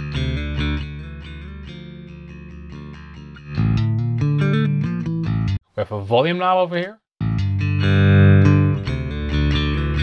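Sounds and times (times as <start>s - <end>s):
plucked electric bass line: 0.0s - 5.6s, 7.2s - 10.0s.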